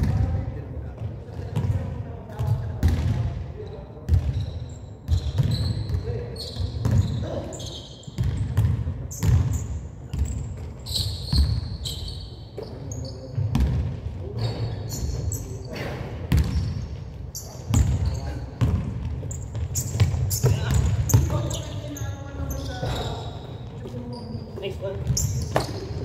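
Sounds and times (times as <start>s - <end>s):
sneaker squeaks: 1.0s - 26.0s
basketball bouncing on hardwood floor: 8.2s - 9.5s, 13.4s - 13.9s, 16.3s - 16.7s, 17.7s - 21.4s.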